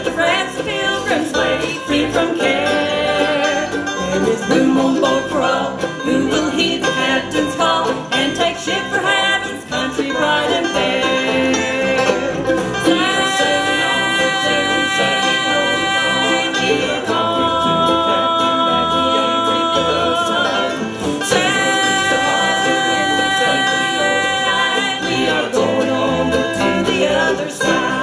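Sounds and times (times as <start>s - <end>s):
bluegrass band playing: 0.0s - 28.0s.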